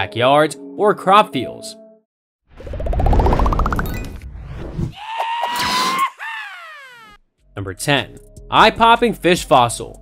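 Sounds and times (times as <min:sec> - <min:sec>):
cartoon rising and falling cry: 0:04.9 - 0:07.2.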